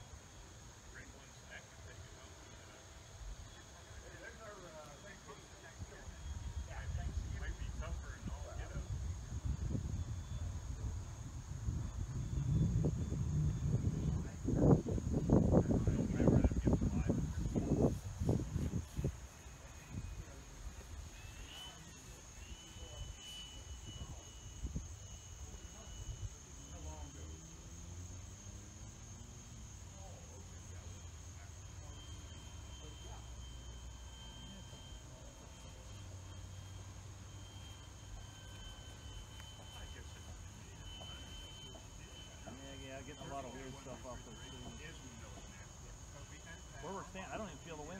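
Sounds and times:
model plane motor whine: 0:00.0 - 0:47.9
wind buffeting microphone: 0:06.3 - 0:21.0.

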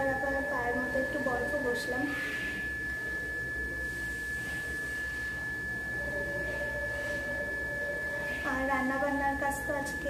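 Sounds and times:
high-pitched whine: 0:00.0 - 0:10.0
low hum: 0:00.0 - 0:10.0.

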